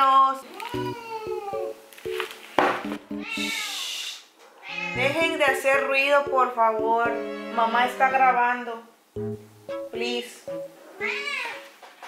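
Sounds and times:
soft background music: 0.0 - 3.6, 4.8 - 11.8
cat meowing: 3.2 - 5.3, 10.8 - 11.7.

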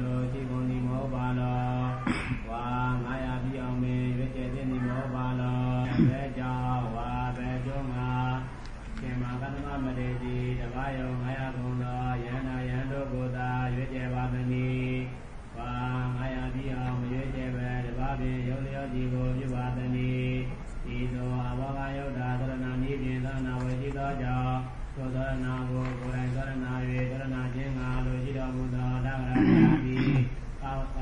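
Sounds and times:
man chanting in monotone: 0.0 - 31.0.

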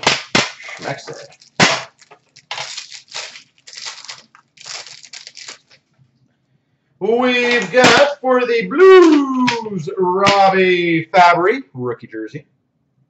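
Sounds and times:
plastic crinkling and rustling: 0.0 - 6.1.

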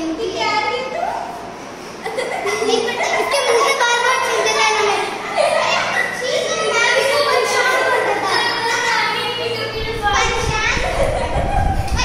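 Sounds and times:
children calling out excitedly: 2.6 - 12.0.

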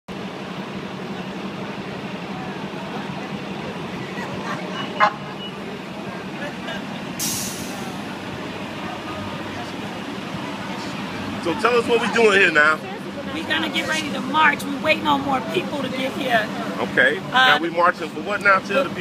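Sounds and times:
traffic engine hum: 0.1 - 19.0
faint chatter: 0.9 - 19.0
hissing air burst: 7.2 - 8.0.

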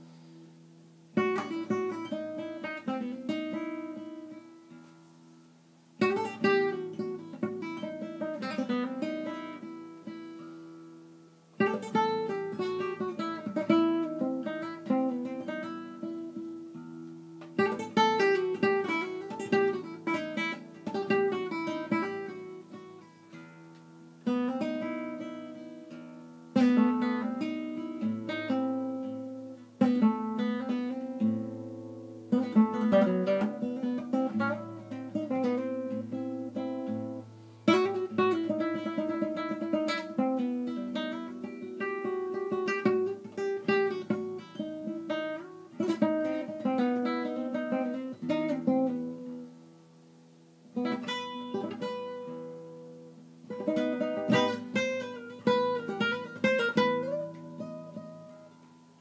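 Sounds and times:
plucked guitar melody: 1.0 - 59.0.

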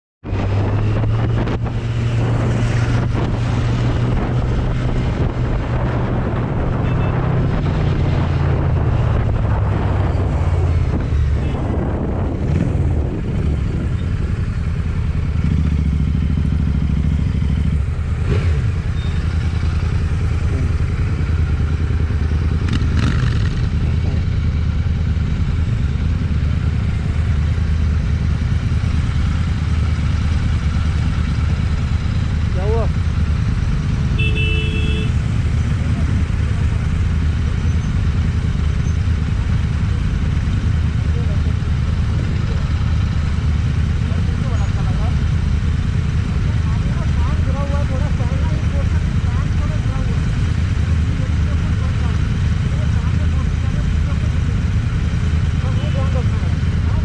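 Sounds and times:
wind rushing over microphone: 0.2 - 15.6, 35.2 - 37.7
motorcycle engine running: 0.3 - 57.0.

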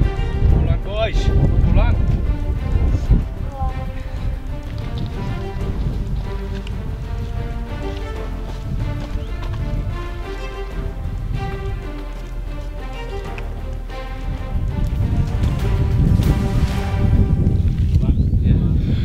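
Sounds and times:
background music with held notes: 0.0 - 18.1
wind rumble on microphone: 0.0 - 19.0.

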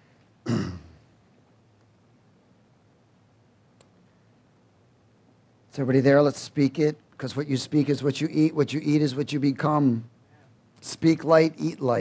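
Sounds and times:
man clearing his throat: 0.4 - 1.1.

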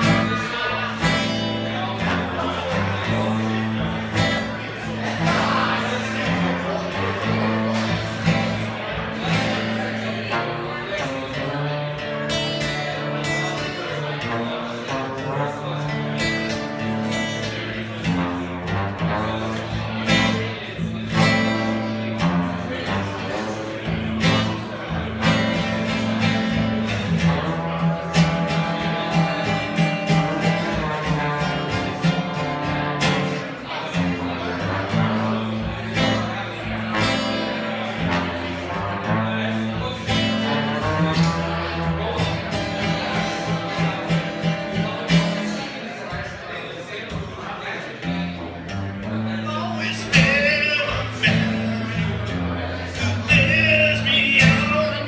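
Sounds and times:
acoustic guitar strumming: 0.0 - 55.0
trombone sliding melody: 14.2 - 20.4, 21.2 - 33.4, 34.2 - 44.4.

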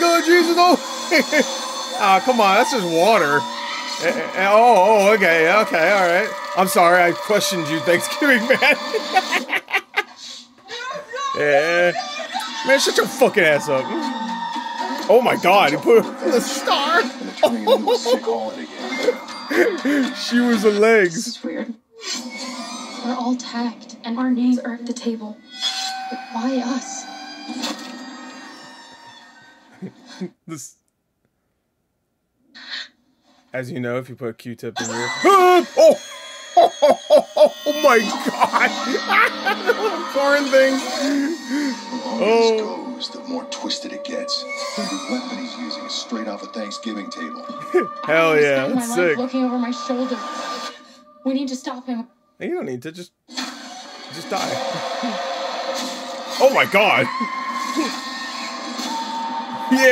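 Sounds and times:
steady high tone: 2.0 - 10.0, 34.9 - 43.5, 45.9 - 49.5.

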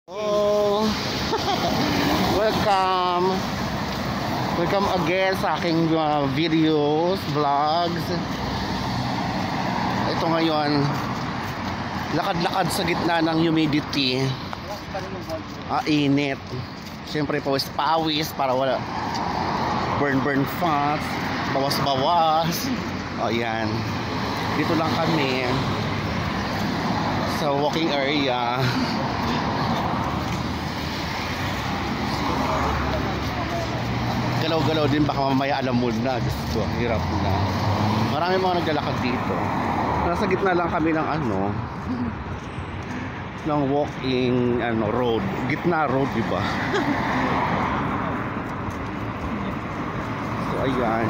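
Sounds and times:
passing vehicles rushing: 0.1 - 51.0.

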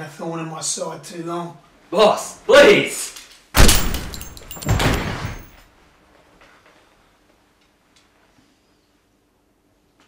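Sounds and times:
heavy thud: 3.6 - 5.6.

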